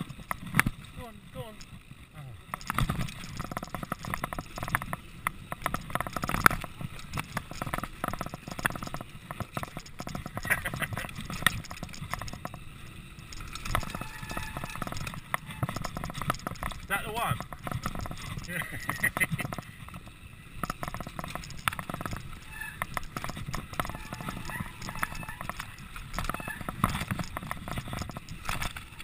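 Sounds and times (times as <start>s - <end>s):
mountain bike rattling on dirt trail: 0.0s - 29.0s
person laughing: 10.4s - 11.2s, 18.4s - 19.5s.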